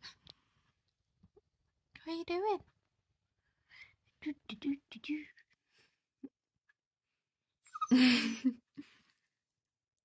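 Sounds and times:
woman laughing: 0:07.7 - 0:09.0.

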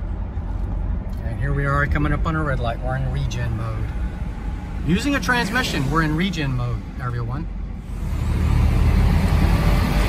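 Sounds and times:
road and tyre rumble in truck cab: 0:00.0 - 0:10.0.

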